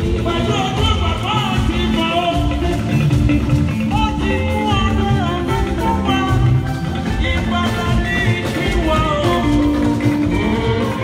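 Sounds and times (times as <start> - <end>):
amplified instrumental backing: 0.0 - 11.0.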